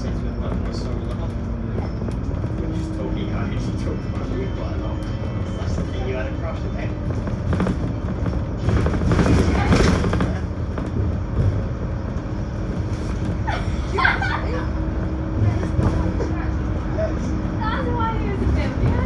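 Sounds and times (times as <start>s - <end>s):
bus engine and road rumble: 0.0s - 19.0s.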